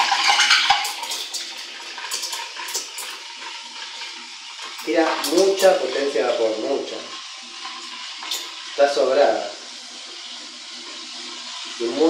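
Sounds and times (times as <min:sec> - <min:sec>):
milk crackling: 0:00.0 - 0:12.0.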